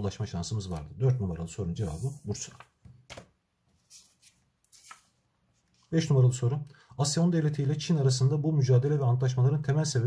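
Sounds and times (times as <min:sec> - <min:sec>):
paper rustling: 0:01.8 - 0:05.9.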